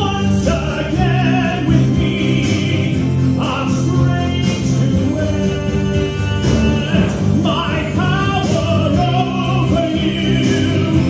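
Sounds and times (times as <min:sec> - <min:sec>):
musical accompaniment: 0:00.0 - 0:11.0
musical theatre singing: 0:00.0 - 0:11.0.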